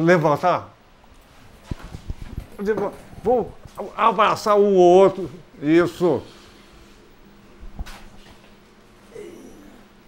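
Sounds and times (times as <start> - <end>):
man talking: 2.6 - 6.4.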